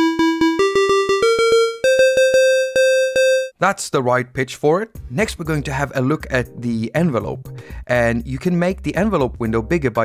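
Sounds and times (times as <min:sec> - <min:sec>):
repeated square-wave synth tone: 0:00.0 - 0:03.5.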